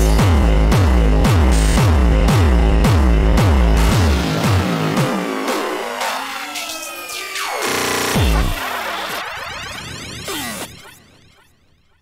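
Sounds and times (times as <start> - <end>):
distorted kick drum: 0.0 - 6.0, 7.7 - 8.6.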